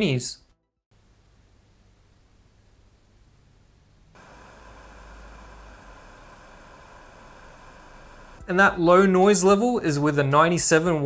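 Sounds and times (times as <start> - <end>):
computer cooling fan hiss: 1.0 - 8.7.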